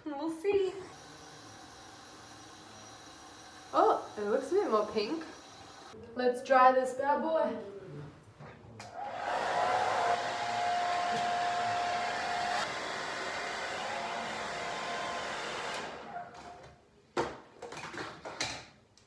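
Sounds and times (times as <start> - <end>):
hair dryer blowing with thin whine: 0.9 - 6.0, 9.0 - 16.1.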